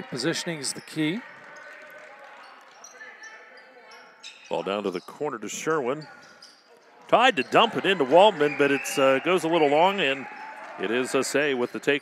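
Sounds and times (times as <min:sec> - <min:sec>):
gym hall background noise: 0:00.0 - 0:12.0.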